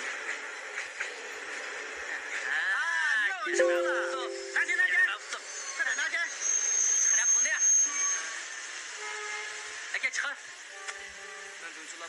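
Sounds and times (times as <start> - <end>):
train running noise inside carriage: 0.0 - 3.2, 7.8 - 12.0
faint held tones: 3.5 - 5.1.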